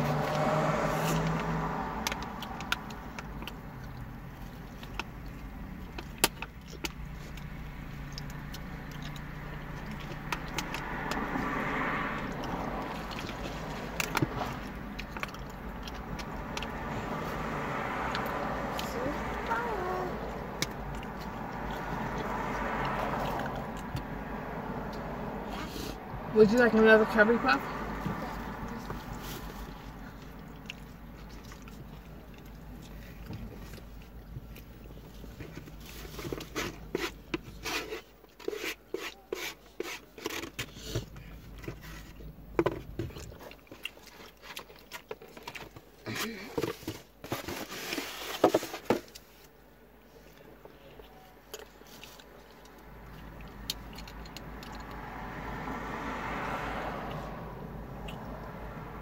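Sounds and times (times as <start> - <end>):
chewing crunchy pastry: 0.0 - 25.8, 27.9 - 47.2, 50.0 - 56.1.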